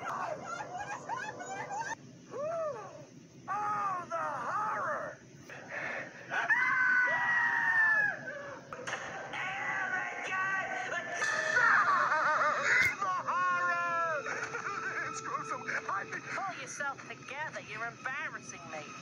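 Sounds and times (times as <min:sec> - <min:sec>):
cartoon voices screaming: 0:00.0 - 0:05.2, 0:06.3 - 0:08.6, 0:11.2 - 0:14.2.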